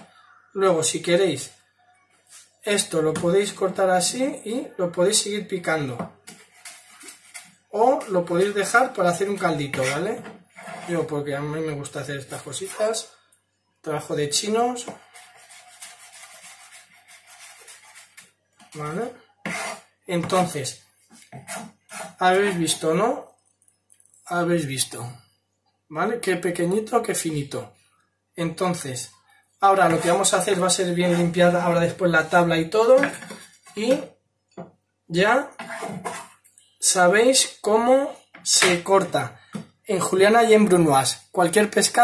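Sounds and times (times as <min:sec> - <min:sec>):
person speaking: 0:07.6 - 0:21.3, 0:21.9 - 0:23.4, 0:24.0 - 0:25.2, 0:28.4 - 0:34.2, 0:36.8 - 0:42.0
knife scraping ceramic plate: 0:09.7 - 0:11.1, 0:19.4 - 0:19.9, 0:21.1 - 0:22.8, 0:29.8 - 0:31.5, 0:35.5 - 0:36.5.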